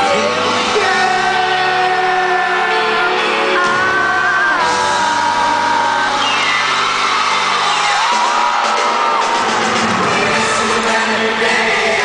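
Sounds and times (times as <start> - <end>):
live pop music: 0.0 - 12.0
audience screaming and whooping: 2.4 - 12.0.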